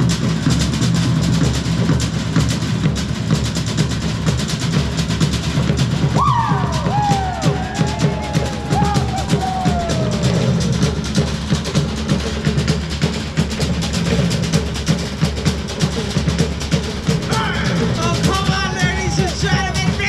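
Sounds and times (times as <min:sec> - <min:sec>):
fast driving drumming: 0:00.0 - 0:20.0
high cries: 0:06.1 - 0:11.0, 0:16.9 - 0:20.0.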